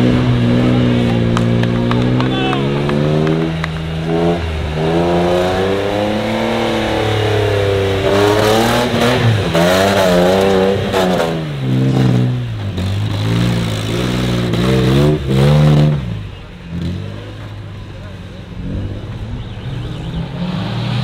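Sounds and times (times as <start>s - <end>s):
truck engine revving hard: 0.0s - 21.0s.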